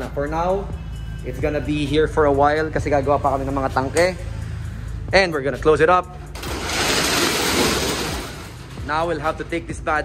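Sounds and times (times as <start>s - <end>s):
metal shutter door rolling down: 6.3s - 9.5s.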